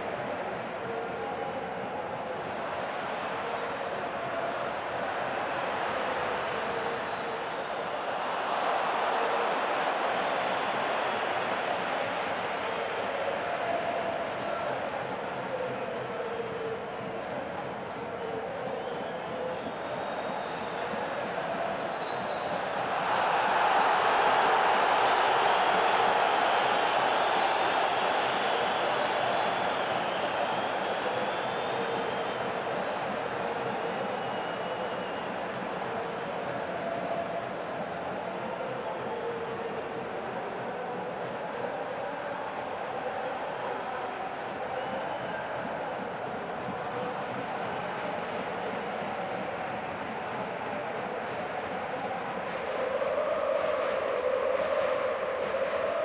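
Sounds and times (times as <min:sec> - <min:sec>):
stadium crowd noise: 0:00.0 - 0:56.0
crowd chanting: 0:22.5 - 0:56.0.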